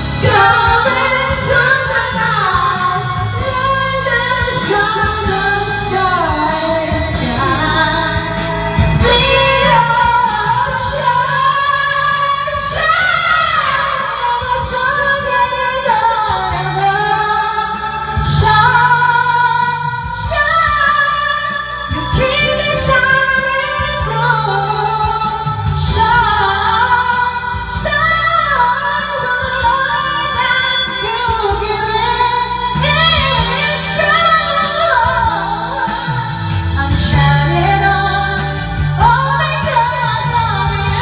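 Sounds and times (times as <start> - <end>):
instrumental backing music: 0.0 - 41.0
woman singing: 0.0 - 41.0.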